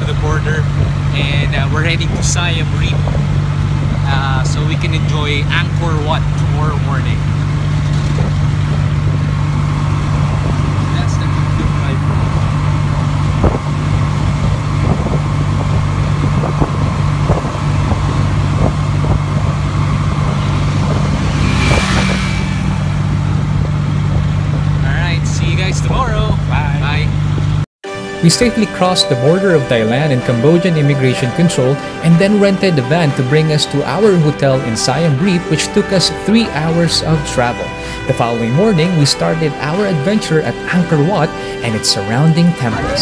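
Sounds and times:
road noise: 0.0s - 43.0s
small engine running: 0.3s - 23.7s.

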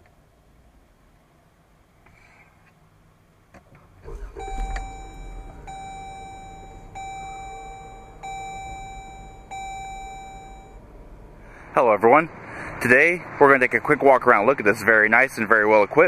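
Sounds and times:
car engine starting and idling: 3.6s - 13.6s
dashboard warning chime: 4.1s - 11.1s.

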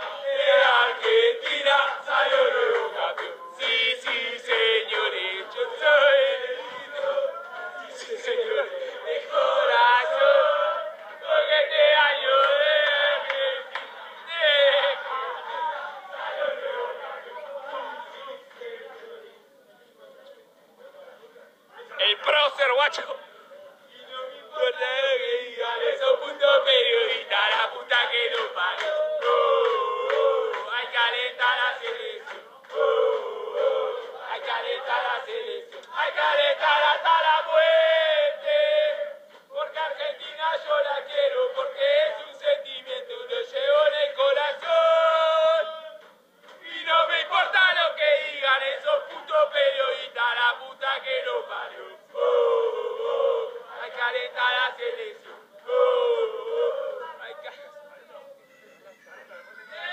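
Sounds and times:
men chanting and singing: 0.0s - 19.5s, 23.5s - 57.8s.

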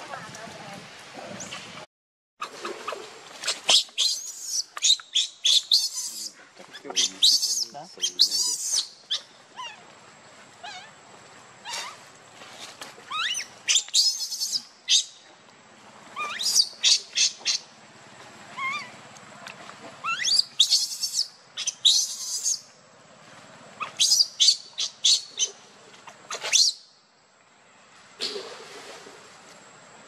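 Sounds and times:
baby monkey screeching: 3.5s - 9.8s, 13.1s - 15.1s, 16.2s - 17.6s, 18.6s - 18.9s, 20.0s - 22.6s, 23.8s - 25.5s.

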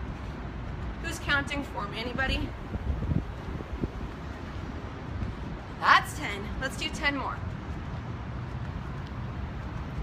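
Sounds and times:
low urban background rumble: 0.0s - 10.0s.

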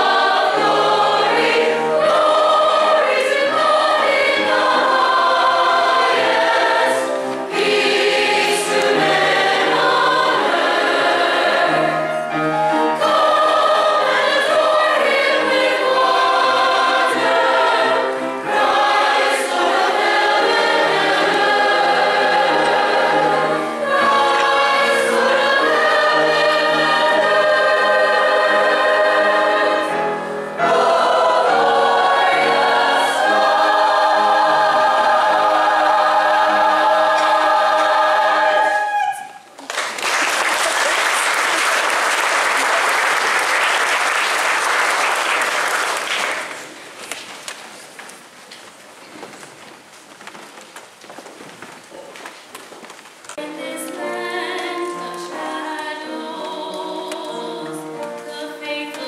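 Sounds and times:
church choir singing: 0.0s - 39.5s, 53.4s - 59.0s.

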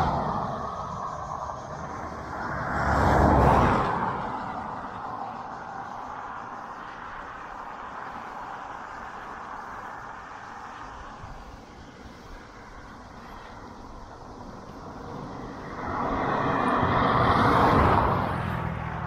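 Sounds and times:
bicycle road noise: 0.0s - 19.0s
car passing: 0.0s - 19.0s
rushing wind: 0.0s - 19.0s.

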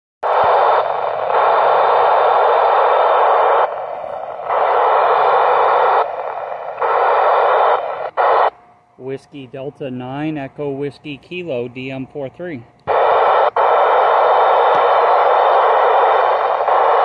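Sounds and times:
radio static hiss: 0.2s - 17.0s.

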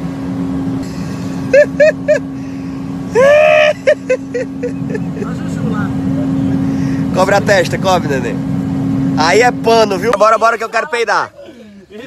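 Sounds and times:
jet cabin drone in flight: 0.0s - 12.0s.

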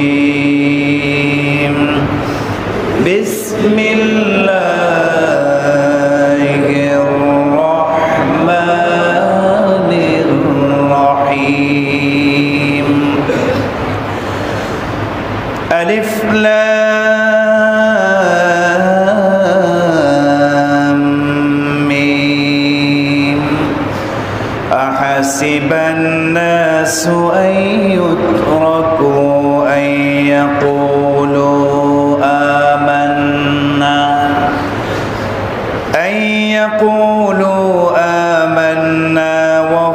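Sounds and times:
man chanting melodically: 0.0s - 13.8s, 15.6s - 35.0s, 35.8s - 39.9s.

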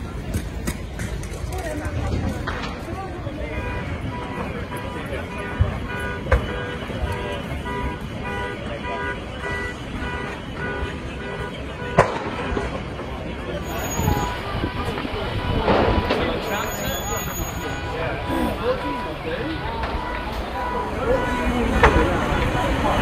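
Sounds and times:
murmur of a crowd: 0.0s - 23.0s
electronic alarm beeping: 13.6s - 22.7s.

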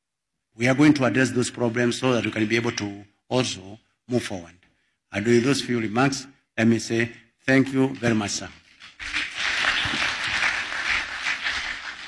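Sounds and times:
audience applauding: 8.9s - 12.0s.

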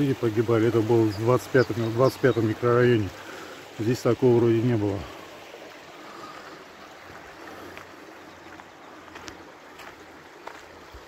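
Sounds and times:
stream running through concrete channel: 0.0s - 11.0s.

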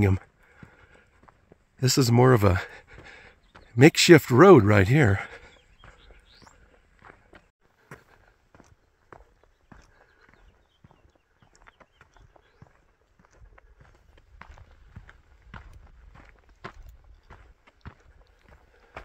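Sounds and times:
footsteps on gravel: 0.0s - 3.8s, 4.8s - 19.0s.

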